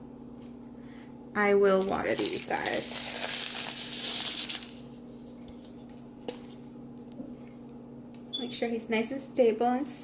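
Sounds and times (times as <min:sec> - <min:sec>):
clay granules rattling into cup: 0:02.0 - 0:04.9.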